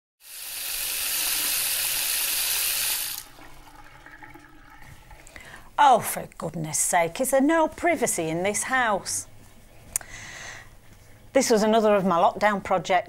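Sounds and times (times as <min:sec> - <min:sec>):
water running from tap: 0:00.2 - 0:05.3.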